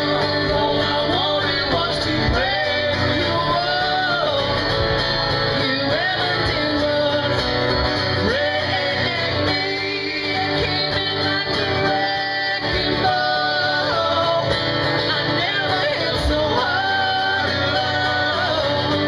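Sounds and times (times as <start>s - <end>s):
guitar accompaniment: 0.0s - 19.0s.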